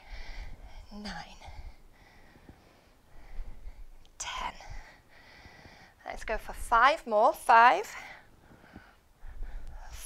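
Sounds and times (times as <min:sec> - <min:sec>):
woman breathing: 0:00.0 - 0:06.1, 0:07.8 - 0:10.0.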